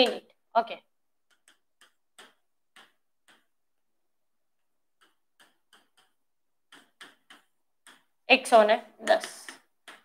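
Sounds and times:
chalk tapping on blackboard: 0:01.1 - 0:03.7, 0:04.6 - 0:08.3, 0:09.0 - 0:10.0.

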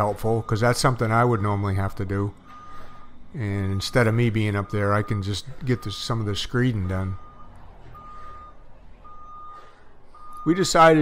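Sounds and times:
truck reversing alarm beeping: 0:00.0 - 0:11.0.

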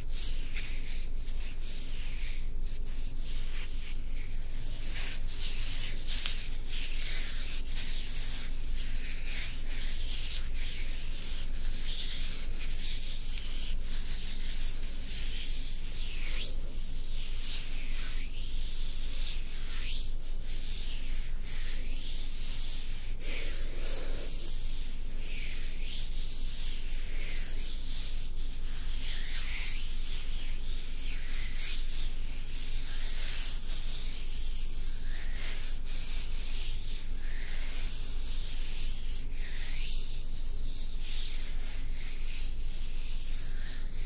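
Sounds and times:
hands rubbing stone: 0:00.0 - 0:44.0.

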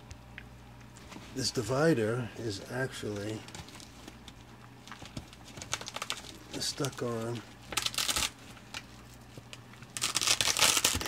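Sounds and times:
reflective fabric crinkling: 0:03.1 - 0:11.0.

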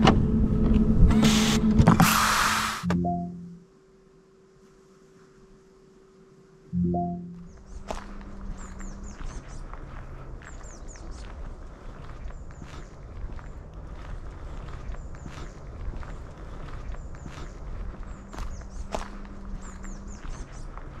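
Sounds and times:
footsteps on sandy road: 0:07.2 - 0:21.0.

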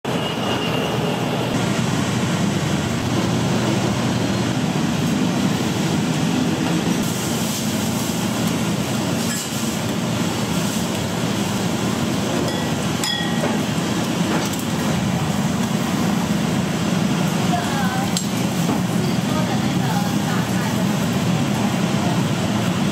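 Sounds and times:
low roar of busy kitchen: 0:00.0 - 0:22.9.

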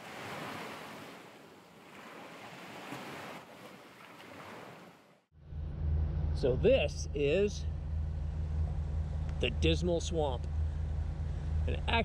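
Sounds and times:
low steady engine hum: 0:05.4 - 0:12.0.

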